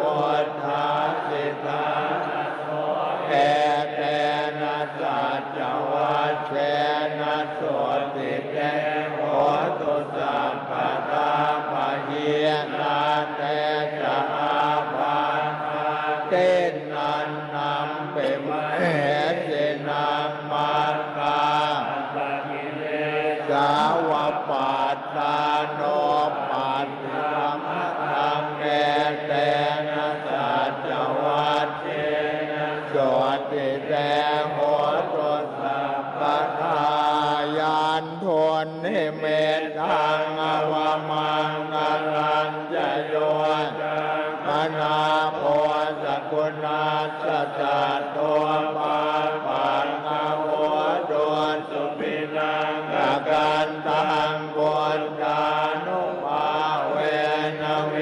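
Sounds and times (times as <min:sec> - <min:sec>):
monks chanting in unison: 0:00.0 - 0:58.0.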